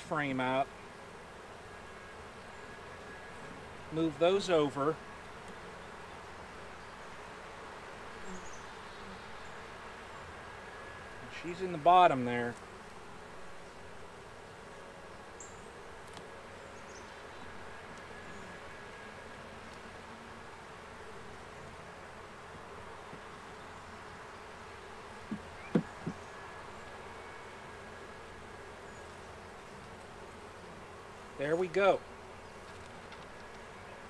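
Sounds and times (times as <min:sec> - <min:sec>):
bees buzzing: 0:00.0 - 0:34.0
quick knocks: 0:25.3 - 0:26.2.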